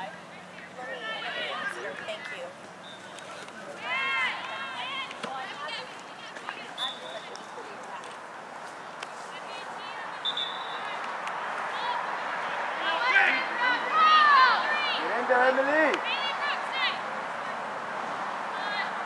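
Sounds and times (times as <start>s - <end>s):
people shouting at soccer game: 0.8s - 2.1s, 3.1s - 7.0s, 9.5s - 17.6s, 18.4s - 19.0s.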